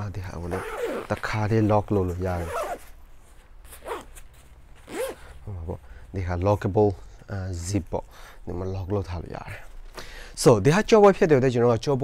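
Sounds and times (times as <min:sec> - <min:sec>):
zipper pulls: 0:00.5 - 0:01.3, 0:02.4 - 0:03.0, 0:03.6 - 0:05.4.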